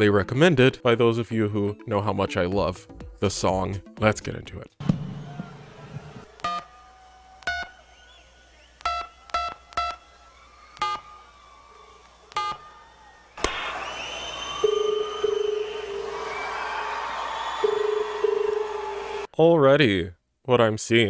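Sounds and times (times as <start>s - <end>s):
crowd noise: 4.8s - 19.3s
steady ringing tone: 14.6s - 16.8s, 17.6s - 19.2s.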